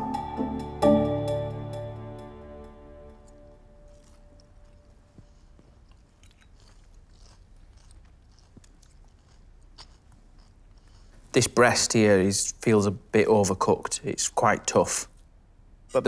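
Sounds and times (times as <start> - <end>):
chewing: 3.2 - 11.3.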